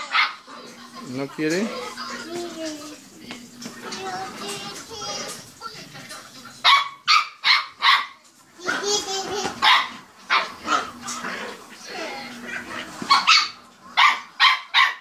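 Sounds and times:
small dog barking: 0:00.0 - 0:00.4, 0:06.6 - 0:08.2, 0:09.6 - 0:10.6, 0:13.1 - 0:15.0.

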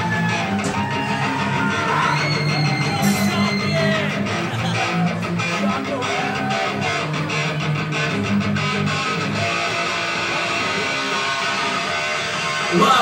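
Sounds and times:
bass guitar: 0:00.0 - 0:13.0
punk rock band playing live: 0:00.0 - 0:13.0
strummed electric guitar: 0:00.0 - 0:13.0.

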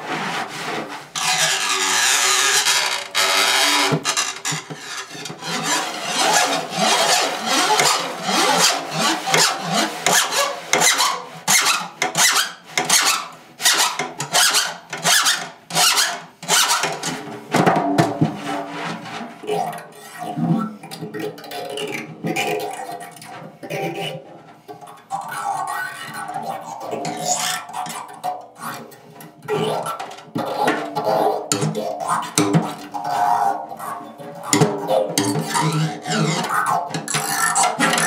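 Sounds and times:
drumhead rubbing: 0:00.0 - 0:20.7, 0:22.3 - 0:38.0
stick scraping drumhead: 0:00.0 - 0:38.0.

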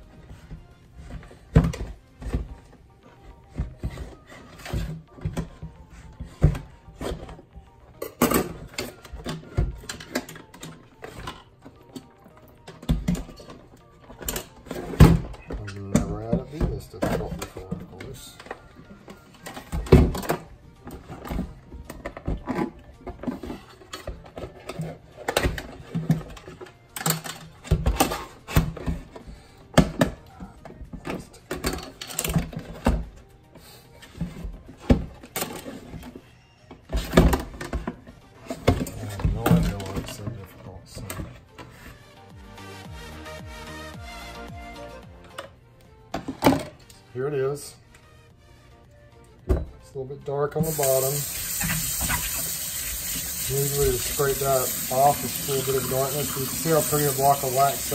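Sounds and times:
background music: 0:00.0 - 0:57.9.

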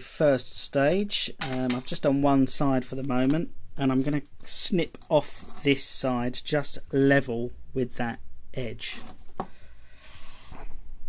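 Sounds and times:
battery cell rustling on surface: 0:08.9 - 0:09.5.

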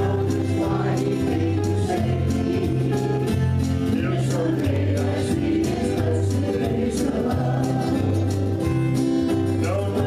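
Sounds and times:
electric guitar: 0:00.0 - 0:10.0.

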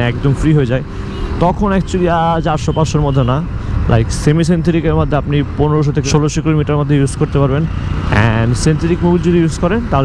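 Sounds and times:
man talking: 0:00.0 - 0:10.0
motorcycle engine rumble: 0:00.0 - 0:10.0.

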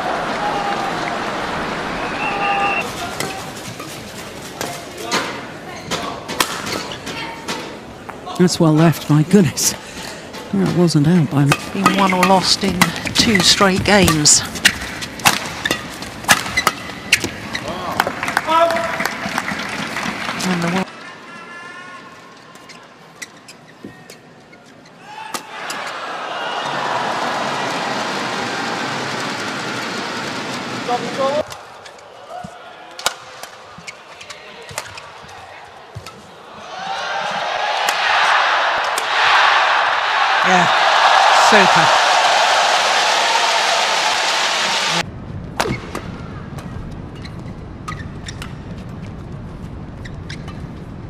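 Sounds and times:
crowd cheering: 0:00.0 - 0:03.6, 0:17.6 - 0:21.8, 0:25.0 - 0:33.9, 0:34.5 - 0:45.1
racket hitting shuttlecock: 0:11.5 - 0:17.4.

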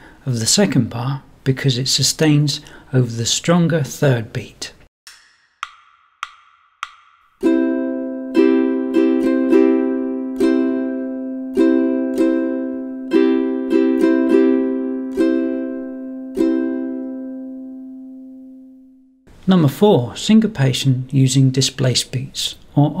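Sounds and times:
ukulele strumming: 0:07.4 - 0:18.4.

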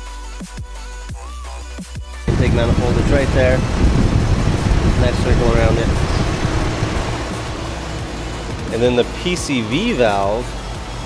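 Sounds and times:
background music: 0:00.0 - 0:11.0
steady low rumble: 0:02.3 - 0:09.2.

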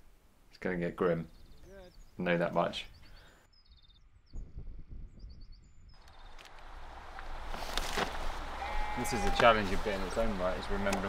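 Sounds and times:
small bird chirping: 0:01.2 - 0:06.5.

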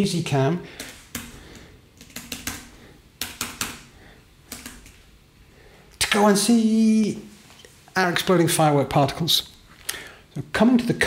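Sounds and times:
laptop keys clicking: 0:00.8 - 0:01.3, 0:02.0 - 0:03.9, 0:04.5 - 0:05.0.

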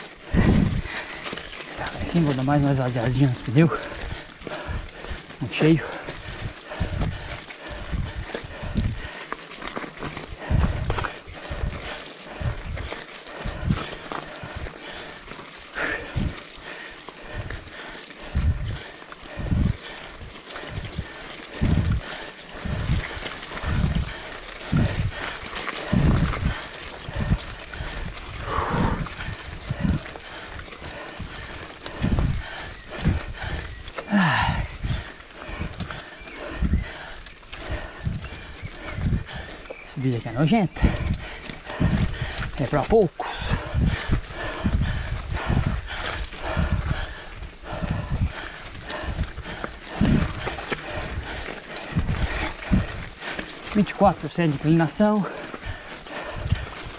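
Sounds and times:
hard rhythmic breathing: 0:00.0 - 0:56.9.

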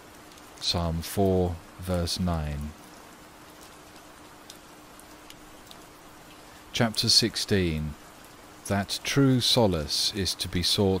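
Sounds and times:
faint dripping ticks: 0:00.0 - 0:10.9
faint steady hum: 0:00.0 - 0:11.0
soft rain-like hiss: 0:00.0 - 0:11.0.

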